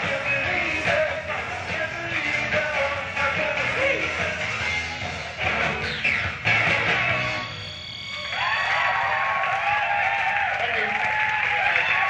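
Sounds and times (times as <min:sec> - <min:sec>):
live rock band playing: 0:00.0 - 0:08.0
audience cheering: 0:08.0 - 0:12.0
audience applause: 0:08.2 - 0:12.0.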